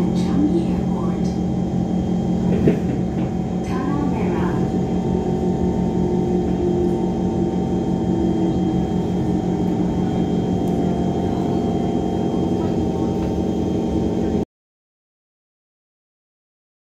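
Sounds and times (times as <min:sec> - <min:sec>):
steady hum tones: 0:00.0 - 0:14.4
train rumble inside carriage: 0:00.0 - 0:14.4.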